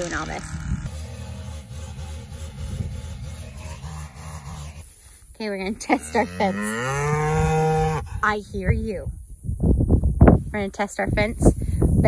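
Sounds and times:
small engine running: 0.0s - 4.9s.

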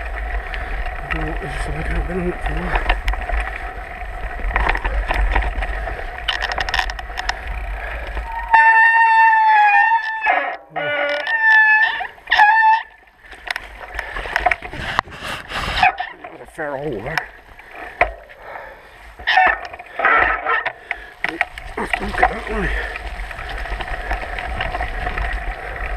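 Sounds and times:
mountain bike rolling over rough trail: 0.0s - 25.9s
rattling clicks from bike: 0.0s - 25.9s
disc brakes squealing: 8.2s - 13.0s.

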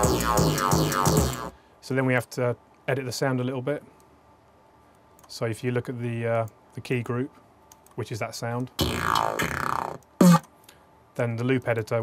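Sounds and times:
gritty bass hit with falling pitch: 0.0s - 1.5s.

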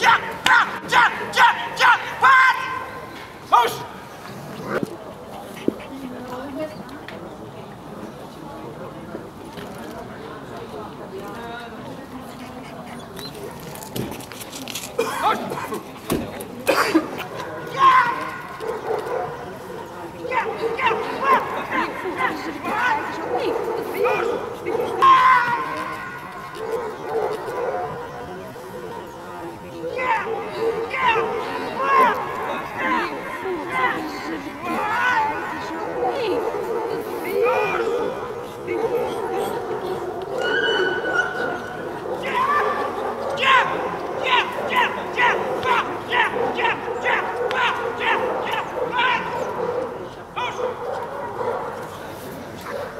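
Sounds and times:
murmur of voices: 0.0s - 52.9s
dog barking: 18.4s - 19.5s, 26.5s - 28.2s, 35.8s - 52.0s, 52.6s - 52.9s
dog crying and whining: 40.4s - 41.7s.

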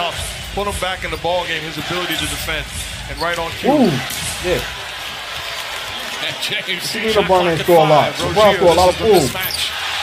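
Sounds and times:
arena crowd noise: 0.0s - 10.0s
man saying yeah: 3.6s - 4.7s, 7.1s - 9.4s.

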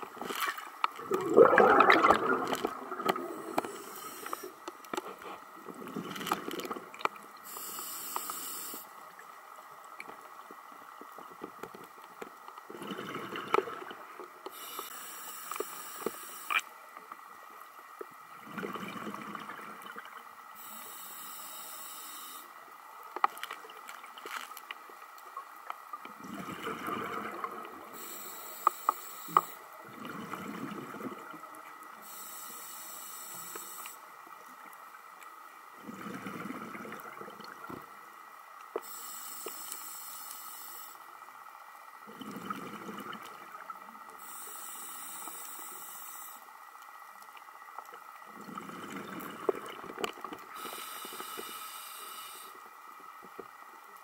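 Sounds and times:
exhaled bubbles rushing: 1.0s - 3.7s, 12.7s - 14.0s, 18.4s - 20.0s, 26.2s - 27.9s, 29.8s - 31.4s
regulator inhale hiss: 3.1s - 4.7s, 7.4s - 9.0s, 14.5s - 16.7s, 20.6s - 22.6s, 27.9s - 29.7s, 32.0s - 34.1s, 38.8s - 41.1s, 44.2s - 46.6s, 50.5s - 52.7s.

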